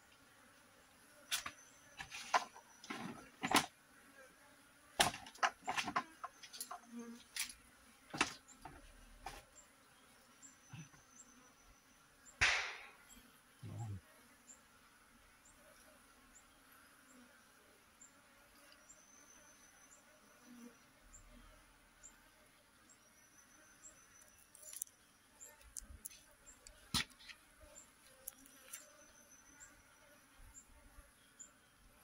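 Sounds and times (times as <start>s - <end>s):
bees buzzing: 0.0s - 32.0s.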